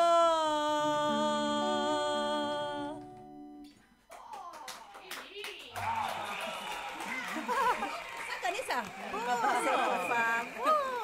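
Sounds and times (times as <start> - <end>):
woman singing: 0.0 - 3.0
acoustic guitar: 0.0 - 4.0
people clapping: 4.1 - 11.0
people whooping and laughing: 5.7 - 11.0.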